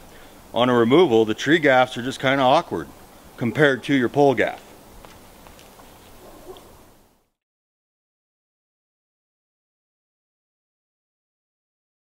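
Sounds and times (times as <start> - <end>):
faint outdoor ambience: 0.0 - 7.4.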